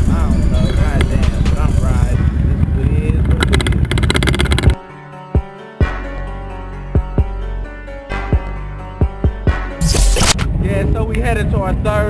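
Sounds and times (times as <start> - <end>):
music: 0.0 - 3.7, 4.7 - 12.0
wind rushing over microphone: 0.0 - 4.8, 10.4 - 12.0
motorcycle engine running: 3.2 - 4.8.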